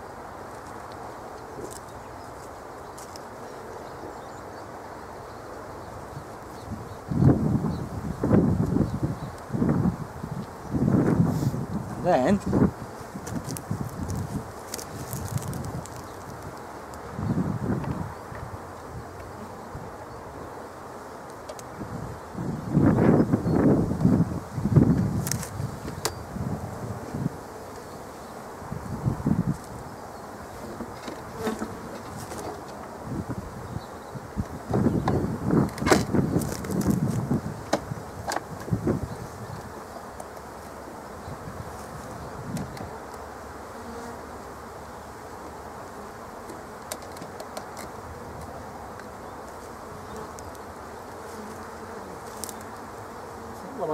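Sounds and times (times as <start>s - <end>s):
bees buzzing: 0.0s - 53.9s.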